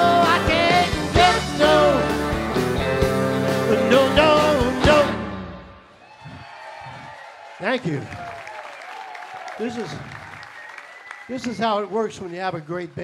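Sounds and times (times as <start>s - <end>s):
audience applauding: 6.0s - 13.0s
voices over clapping: 6.0s - 13.0s.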